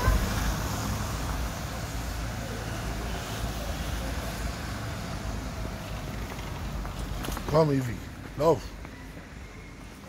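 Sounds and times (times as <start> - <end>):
tyres on wet street: 0.0 - 10.0
van engine rumble: 0.0 - 10.0.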